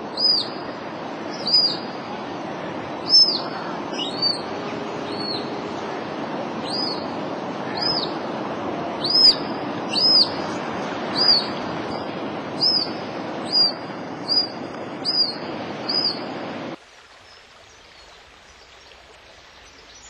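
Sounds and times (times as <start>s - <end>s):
flowing water: 0.0s - 20.0s
high-pitched whistled call: 3.1s - 4.4s, 9.0s - 10.4s, 11.2s - 11.6s, 12.6s - 16.2s.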